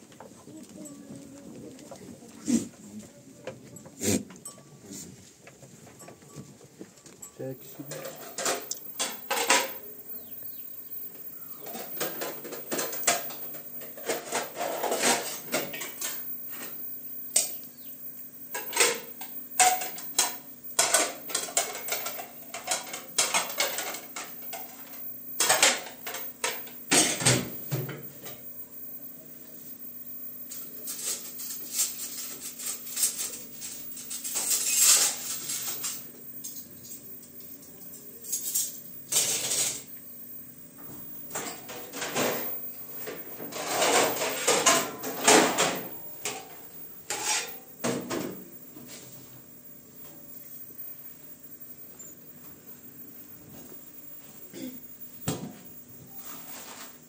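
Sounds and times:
faint steady hum: 0:00.0 - 0:57.0
dishes clinking and clattering: 0:07.8 - 0:09.9, 0:11.6 - 0:16.8, 0:18.6 - 0:28.0, 0:41.3 - 0:48.4.

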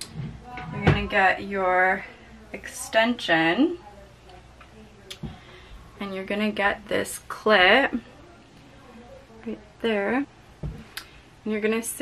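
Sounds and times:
soft low thud: 0:10.6 - 0:10.9.

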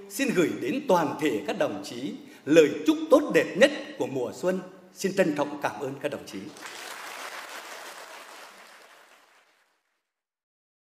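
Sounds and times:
audience applause: 0:06.5 - 0:09.9.

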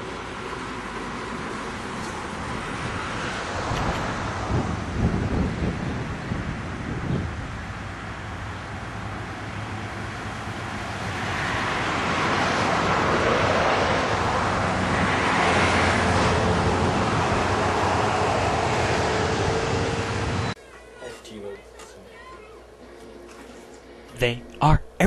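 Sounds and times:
car and traffic noise: 0:00.0 - 0:20.6.

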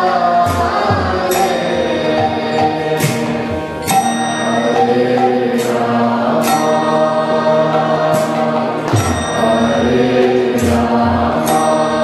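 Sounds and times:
mantra chanting with music: 0:00.0 - 0:12.0
sustained drone notes: 0:00.0 - 0:12.0.

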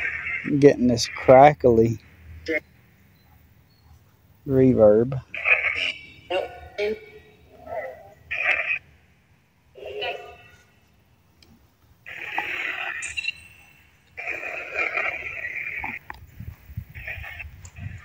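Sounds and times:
crackly electronic static: 0:00.0 - 0:03.0, 0:04.4 - 0:07.0, 0:07.6 - 0:10.9, 0:12.0 - 0:18.0.

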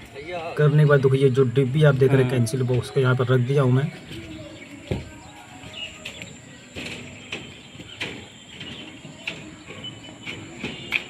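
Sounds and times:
soft bird chirps: 0:00.6 - 0:11.0.

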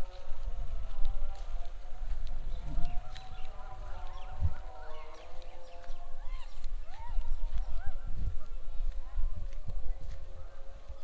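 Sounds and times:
footsteps on dry stubble: 0:00.0 - 0:11.0
wind buffeting microphone: 0:00.0 - 0:11.0.

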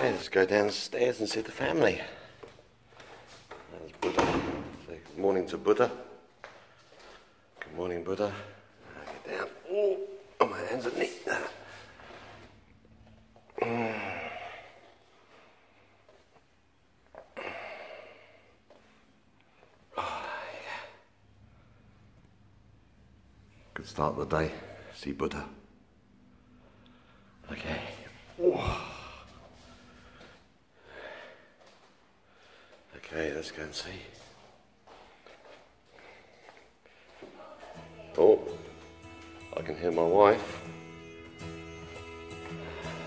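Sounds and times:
person sighing: 0:13.5 - 0:15.0, 0:17.2 - 0:18.5, 0:28.3 - 0:31.2
soft footsteps on stairs: 0:31.6 - 0:39.3.

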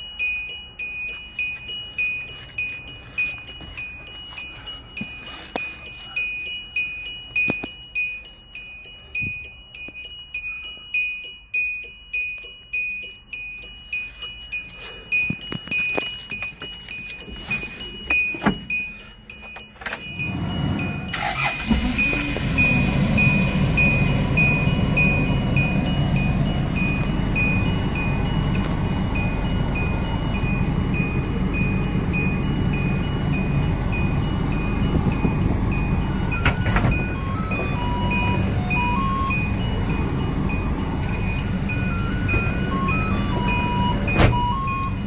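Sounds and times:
dashboard warning chime: 0:00.0 - 0:45.0
engine starting and idling: 0:19.8 - 0:26.1.

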